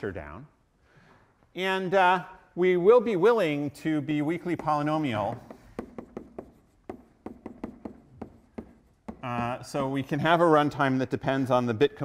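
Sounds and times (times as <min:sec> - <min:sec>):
chalk tapping on blackboard: 0:04.4 - 0:09.8.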